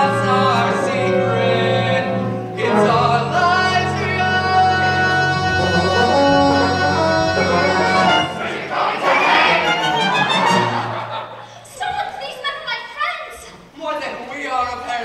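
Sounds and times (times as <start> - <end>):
cast singing together: 0.0 - 11.0
instrumental accompaniment: 0.0 - 11.5.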